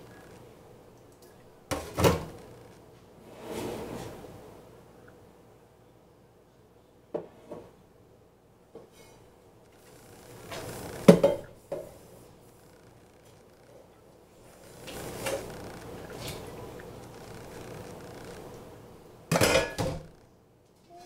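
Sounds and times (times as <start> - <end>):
dishes and glassware clinking: 19.3 - 20.1.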